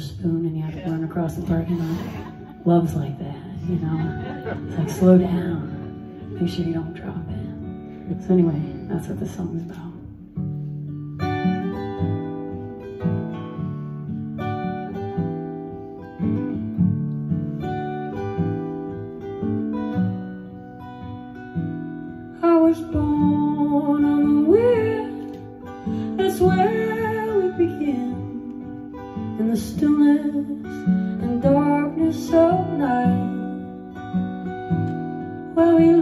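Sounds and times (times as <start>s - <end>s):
acoustic guitar picking: 0.0s - 36.0s.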